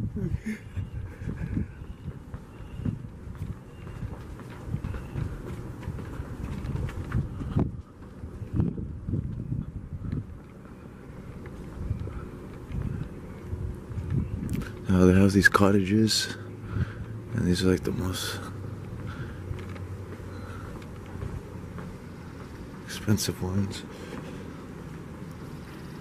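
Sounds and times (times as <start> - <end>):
handheld camera rumble: 0.0 - 26.0
footsteps on pavement: 0.6 - 26.0.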